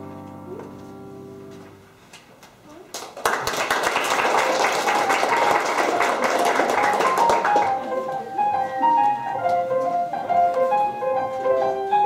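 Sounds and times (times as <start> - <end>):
two pianos playing: 0.0 - 2.0, 4.4 - 12.0
audience applause: 2.9 - 8.3.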